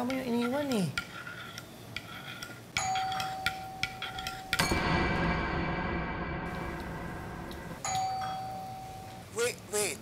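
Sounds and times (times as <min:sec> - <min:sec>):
metal spoon clinking on mug: 0:02.0 - 0:04.7
steady held tone: 0:04.6 - 0:09.2.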